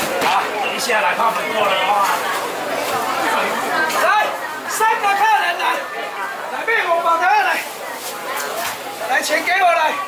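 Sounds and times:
people talking in echoing hall: 0.0 - 10.0.

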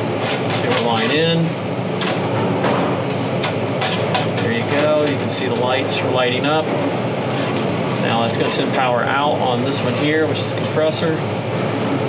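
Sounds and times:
loud mechanical running noise: 0.0 - 12.0.

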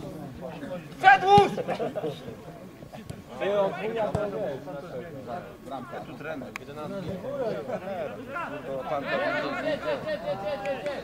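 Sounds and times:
men shouting: 1.0 - 1.9.

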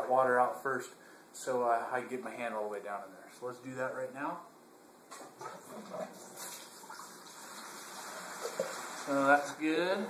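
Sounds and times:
water flowing through siphon hose: 5.1 - 9.6.

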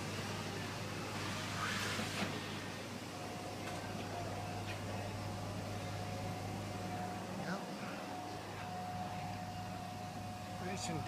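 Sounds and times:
low machine hum: 0.0 - 11.0
thin steady whine: 0.0 - 11.0.

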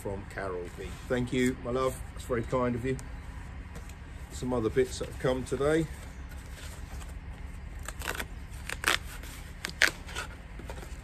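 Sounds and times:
cardboard parcel being torn open: 7.8 - 11.0.

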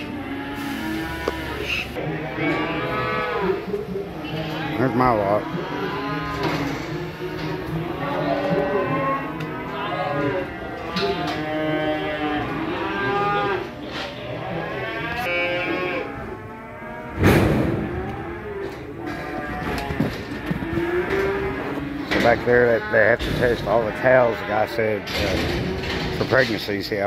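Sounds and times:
cattle mooing and bawling: 0.0 - 26.2
loud bang: 17.2 - 18.0.

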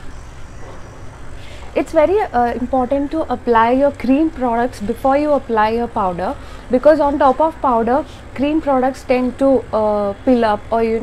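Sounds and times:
woman speaking: 1.8 - 11.0.

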